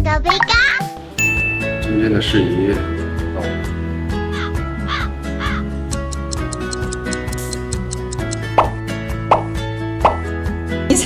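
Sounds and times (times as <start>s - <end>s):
light background music: 0.0s - 11.0s
crow cawing sound effect: 4.2s - 5.7s.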